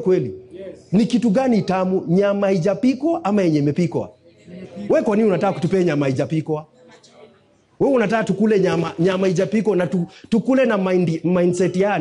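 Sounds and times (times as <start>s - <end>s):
man preaching: 0.0s - 6.7s, 7.8s - 12.0s.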